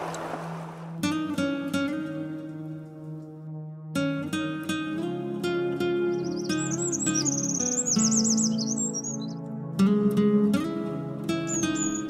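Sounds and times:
acoustic guitar music: 0:00.0 - 0:12.0
birds chirping and trilling: 0:05.2 - 0:09.6, 0:11.2 - 0:12.0.

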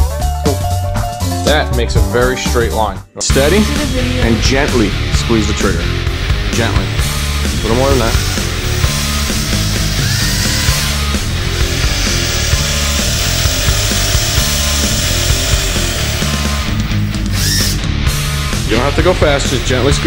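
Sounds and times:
loud rock music: 0:00.0 - 0:20.0
cordless drill drilling wood: 0:08.2 - 0:17.9.

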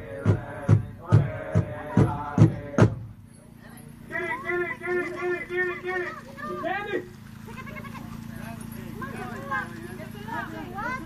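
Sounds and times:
group singing: 0:00.0 - 0:03.2
steady low hum: 0:00.0 - 0:11.0
children shouting and squealing: 0:04.1 - 0:11.0.

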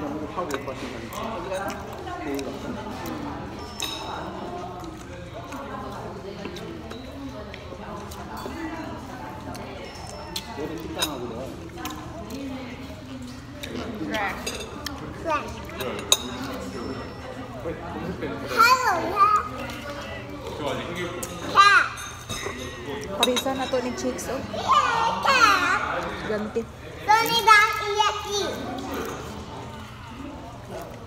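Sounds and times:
indistinct chatter of voices: 0:00.0 - 0:31.0.

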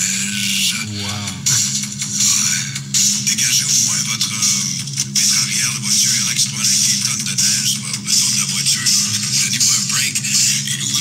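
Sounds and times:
music with sustained low notes: 0:00.0 - 0:11.0
person speaking over music: 0:00.0 - 0:11.0.

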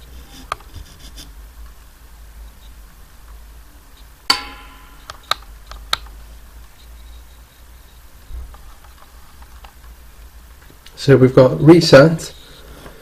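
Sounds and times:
low steady hum: 0:01.7 - 0:10.9.

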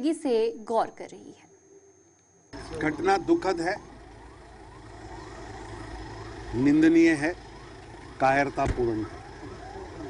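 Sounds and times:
low steady hum: 0:01.2 - 0:10.0
siren sweeping up in pitch: 0:02.5 - 0:10.0.

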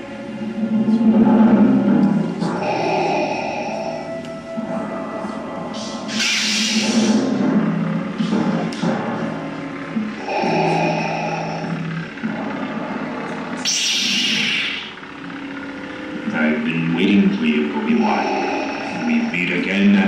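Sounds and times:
background music: 0:00.0 - 0:20.0
lightsaber hum: 0:00.0 - 0:20.0
lightsaber igniting hiss: 0:05.8 - 0:07.3, 0:13.6 - 0:15.0.

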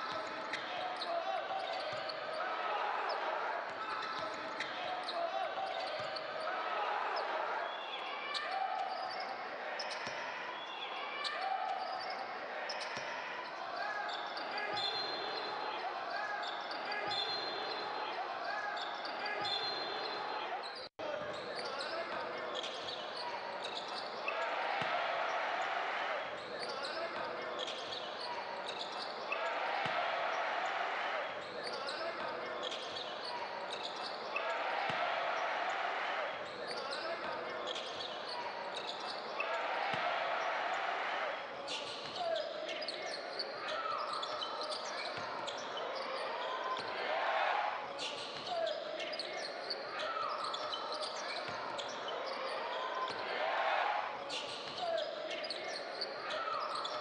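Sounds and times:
sneakers squeaking on floor: 0:00.0 - 0:02.4, 0:18.7 - 0:24.2, 0:26.4 - 0:29.3, 0:31.4 - 0:35.0, 0:36.4 - 0:39.5, 0:41.7 - 0:46.9, 0:48.0 - 0:53.2, 0:54.2 - 0:57.0
indistinct crowd voices: 0:00.0 - 0:57.0.

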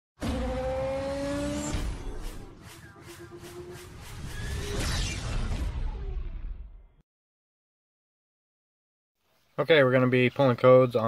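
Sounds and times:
car engine revving: 0:00.2 - 0:04.8.

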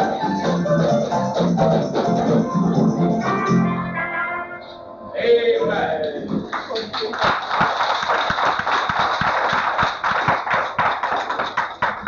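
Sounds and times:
audience applause: 0:06.2 - 0:12.0.

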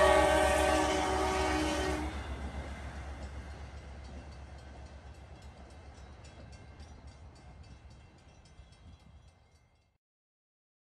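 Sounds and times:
train rumble: 0:00.0 - 0:09.9.

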